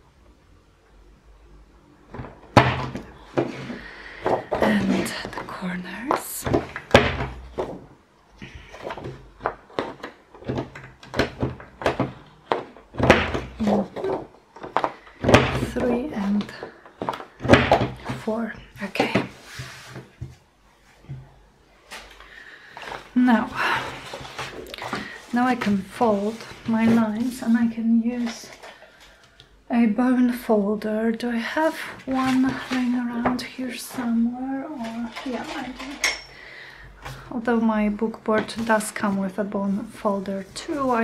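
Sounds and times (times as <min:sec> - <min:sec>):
card rustling and sliding: 0:19.1 - 0:20.4, 0:23.8 - 0:27.6.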